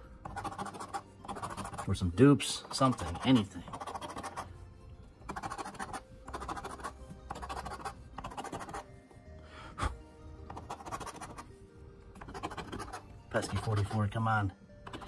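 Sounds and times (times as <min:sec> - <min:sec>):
soft background music: 0:00.0 - 0:15.0
coin scraping scratch-off ticket: 0:00.3 - 0:01.9, 0:02.6 - 0:04.5, 0:05.3 - 0:08.8, 0:10.5 - 0:11.5, 0:12.2 - 0:14.1.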